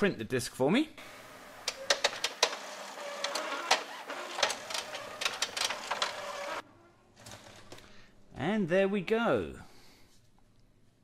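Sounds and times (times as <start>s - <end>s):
inkjet printer whirring: 1.1s - 6.6s
printer clicks: 1.6s - 6.6s.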